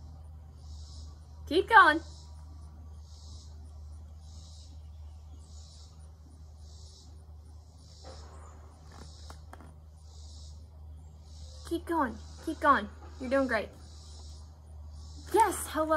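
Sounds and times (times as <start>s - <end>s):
insects singing in pulses: 0.0s - 15.9s
low steady hum: 0.0s - 15.9s.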